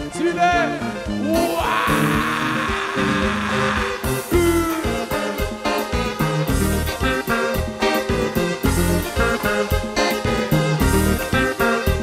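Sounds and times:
live konpa band music: 0:00.0 - 0:12.0
sustained bass notes: 0:00.0 - 0:12.0.

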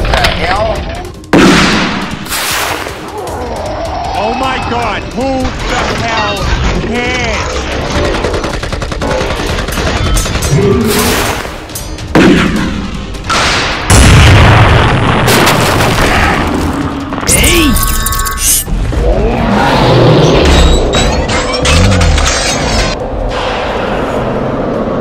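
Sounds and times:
rapid gunfire: 0:07.5 - 0:11.6
loud booms: 0:12.2 - 0:16.6.

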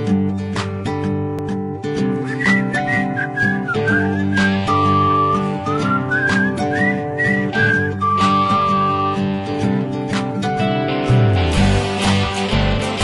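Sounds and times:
strummed acoustic guitar: 0:00.0 - 0:13.0
whistled melody: 0:02.2 - 0:09.2.

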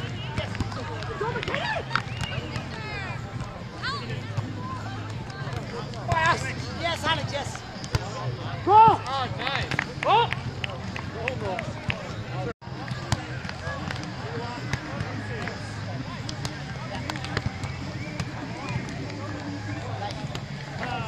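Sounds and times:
players shouting calls: 0:00.0 - 0:21.0.

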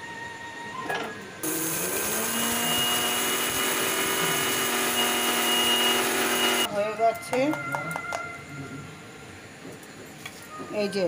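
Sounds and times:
mixer grinder motor whine: 0:01.4 - 0:06.7.

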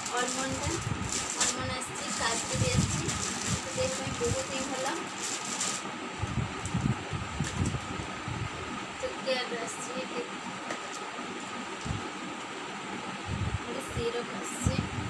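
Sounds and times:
packets and boxes handled: 0:00.0 - 0:05.9
steady background hum: 0:00.0 - 0:15.0.

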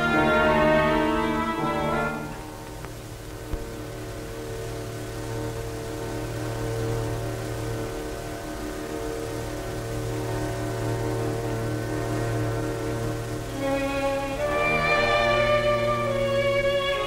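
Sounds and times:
low drone: 0:00.0 - 0:17.0
orchestra holding a chord: 0:00.0 - 0:17.0.

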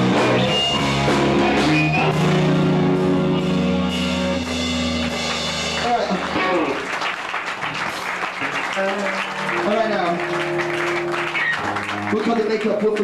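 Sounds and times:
rock band playing: 0:00.0 - 0:13.0
audience clapping and cheering: 0:03.6 - 0:13.0
audience whooping: 0:04.5 - 0:12.6.

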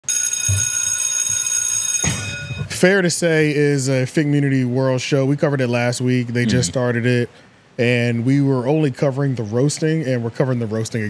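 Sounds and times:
electric school bell ringing: 0:00.1 - 0:02.7.

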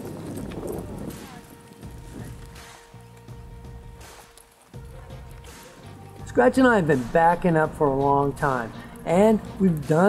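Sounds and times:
horse hoofbeats on dirt: 0:00.0 - 0:10.0.

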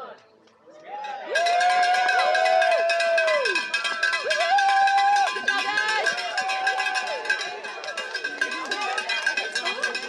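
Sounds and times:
crowd cheering: 0:00.7 - 0:10.0
cowbells clanging: 0:01.1 - 0:10.0.

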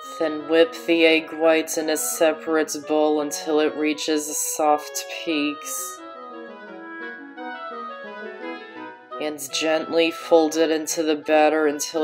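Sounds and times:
instrumental melody of held notes: 0:00.0 - 0:12.0.

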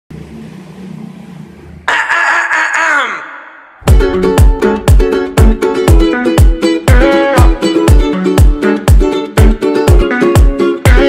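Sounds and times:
acoustic guitar music: 0:03.8 - 0:11.0.

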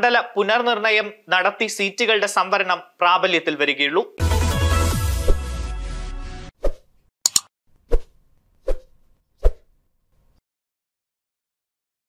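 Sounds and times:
quick double click: 0:07.2 - 0:07.5.

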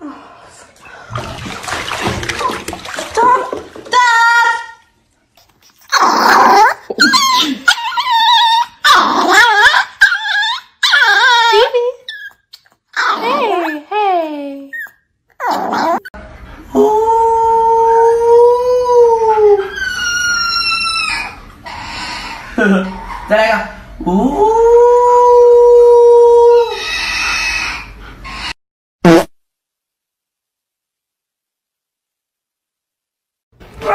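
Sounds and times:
puppy howling: 0:05.9 - 0:11.8, 0:16.8 - 0:23.3, 0:24.1 - 0:27.9
small dog yowling: 0:05.9 - 0:12.4, 0:14.8 - 0:16.1, 0:17.7 - 0:23.4.

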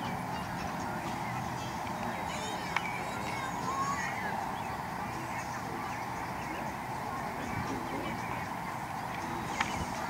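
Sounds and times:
background rumble and hiss: 0:00.0 - 0:10.0
honking bird calls: 0:00.0 - 0:10.0.

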